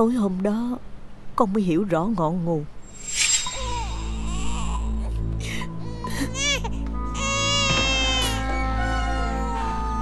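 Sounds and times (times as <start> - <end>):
baby crying: 3.0 - 10.0
background music: 3.0 - 10.0.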